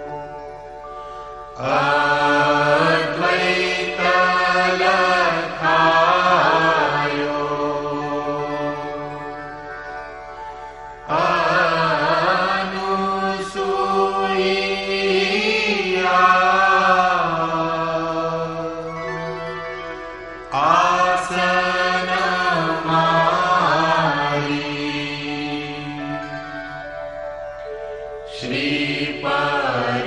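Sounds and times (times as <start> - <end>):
steady drone: 0.0 - 30.0.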